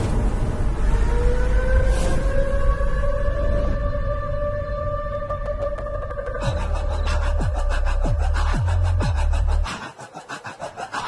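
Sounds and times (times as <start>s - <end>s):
low rumble: 0.0s - 9.7s.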